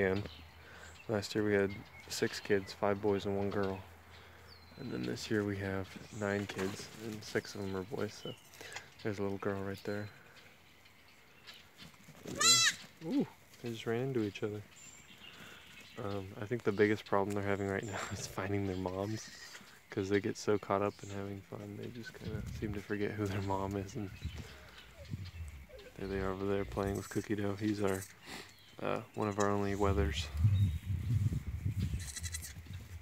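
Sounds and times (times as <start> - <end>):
goats bleating: 12.3 - 12.8, 32.0 - 32.6.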